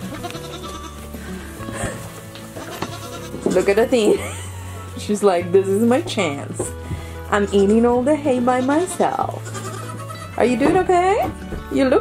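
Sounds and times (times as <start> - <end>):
goat bleating: 0.0 - 1.1, 2.6 - 4.4, 7.6 - 10.4
background music with held notes: 0.0 - 12.0.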